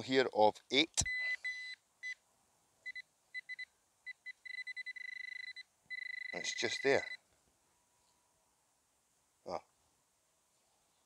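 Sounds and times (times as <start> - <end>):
pinpointer beeping: 1.0 - 2.2, 2.9 - 7.2.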